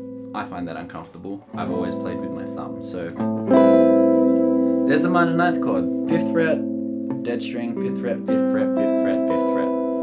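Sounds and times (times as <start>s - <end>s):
electric guitar chord ringing: 1.5s - 10.0s.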